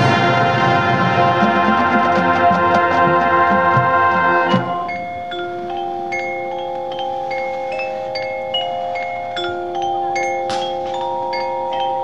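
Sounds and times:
marching band soft held chord: 0:00.0 - 0:05.2
mallet percussion bell-like notes: 0:01.2 - 0:12.0.

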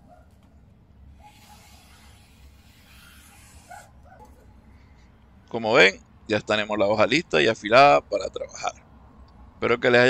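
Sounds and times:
faint small dog barking: 0:00.0 - 0:00.4, 0:01.2 - 0:02.2, 0:03.4 - 0:04.5.

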